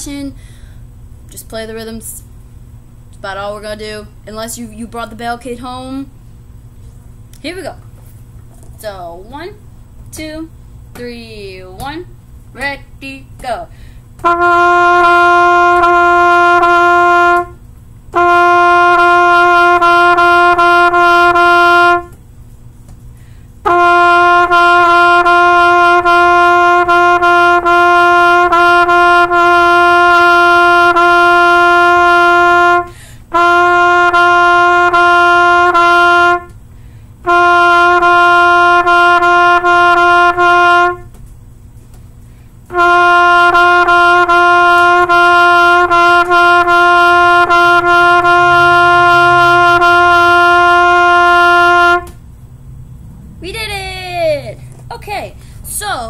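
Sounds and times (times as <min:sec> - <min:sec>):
trumpet playing repeated note: 0:14.2 - 0:22.2, 0:23.6 - 0:36.6, 0:37.2 - 0:41.1, 0:42.7 - 0:52.2.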